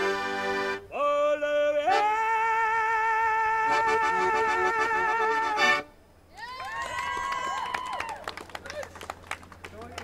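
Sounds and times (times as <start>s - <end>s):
bystanders cheering woo: 6.3s - 9.0s
scattered handclaps: 6.8s - 10.0s.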